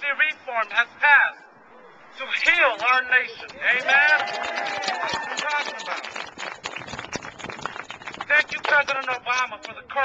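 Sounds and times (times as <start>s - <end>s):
crowd clapping: 2.8s - 9.8s.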